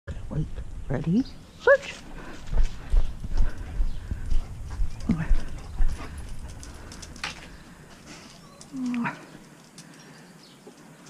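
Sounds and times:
footsteps on concrete: 0:01.8 - 0:08.4.

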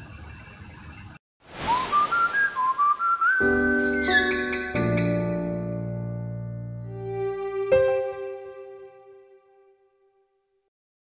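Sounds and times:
high melody line: 0:03.4 - 0:06.2
sustained keyboard chords: 0:03.5 - 0:09.4.

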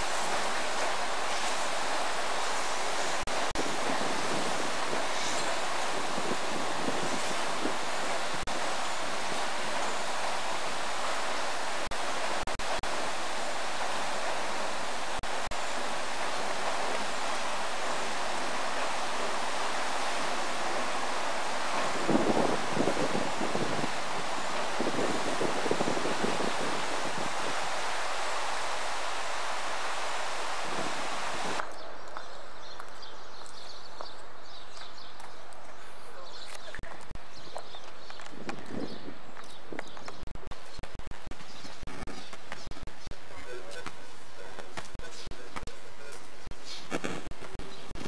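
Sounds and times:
water rushing through sluice gates: 0:00.0 - 0:31.6
wind buffeting microphone: 0:00.0 - 0:31.7, 0:36.8 - 0:43.6.

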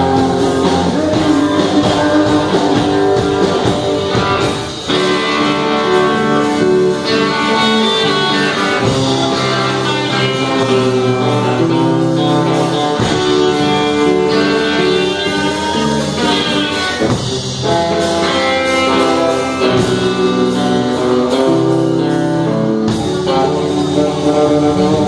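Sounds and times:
drum kit: 0:00.0 - 0:25.0
electric bass: 0:00.0 - 0:25.0
electric guitar: 0:00.0 - 0:25.0.

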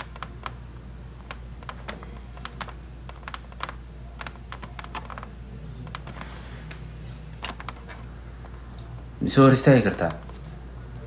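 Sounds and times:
light typing clicks and taps: 0:00.0 - 0:00.6, 0:01.2 - 0:06.4
steady low hum: 0:00.0 - 0:11.0.

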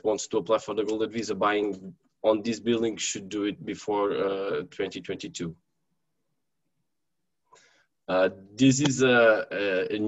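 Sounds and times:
faint breath drawn in: 0:07.5 - 0:08.0.

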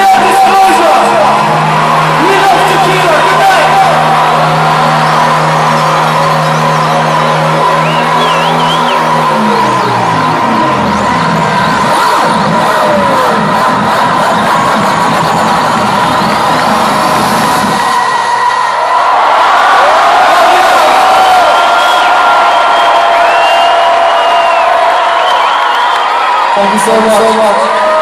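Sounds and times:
crowd cheering and whooping: 0:00.0 - 0:28.0
electronic dance music: 0:00.0 - 0:28.0.

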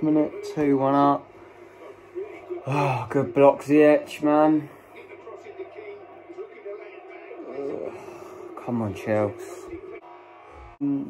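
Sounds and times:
faint commentator's voice on television: 0:00.0 - 0:10.1
football match crowd noise: 0:01.2 - 0:10.8.

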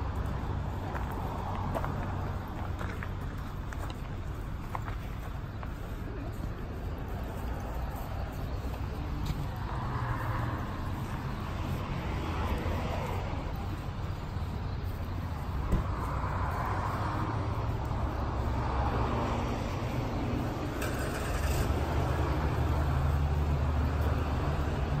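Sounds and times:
road traffic rumble: 0:00.0 - 0:25.0.

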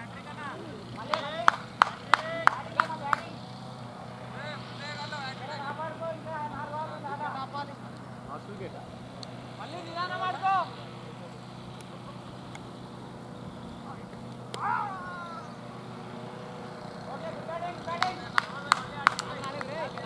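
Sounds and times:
players calling out: 0:00.0 - 0:20.0
steady low hum: 0:00.0 - 0:20.0.

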